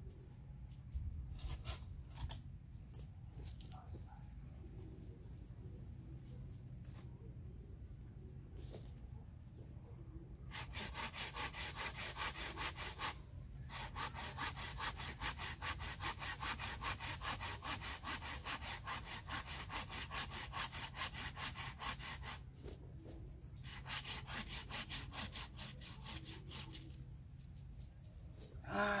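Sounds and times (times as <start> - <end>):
hand saw cutting branch: 1.4 - 2.4, 10.5 - 22.4, 23.6 - 27.0.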